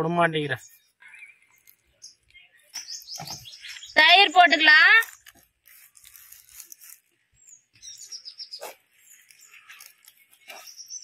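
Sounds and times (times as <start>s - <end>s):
small bird chirping: 0.5s - 11.0s.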